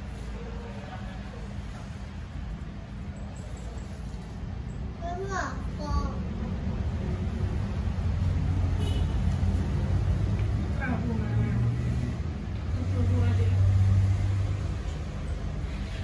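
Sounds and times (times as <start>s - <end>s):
faint voices talking: 0.0s - 6.6s.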